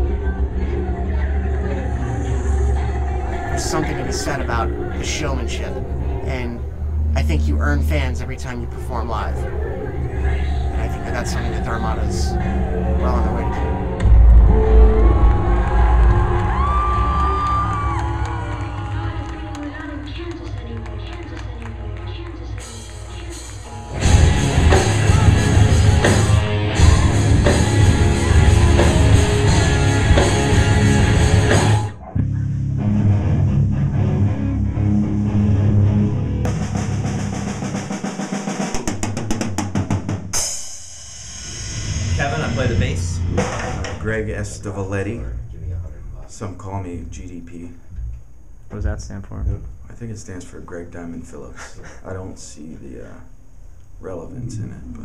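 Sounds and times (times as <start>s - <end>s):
crowd cheering and shouting: 12.3s - 20.6s, 23.8s - 31.8s
long held shout: 12.6s - 19.6s
live rock band music: 22.6s - 40.6s
cymbal crash: 36.5s - 44.1s
drum roll: 36.5s - 44.6s.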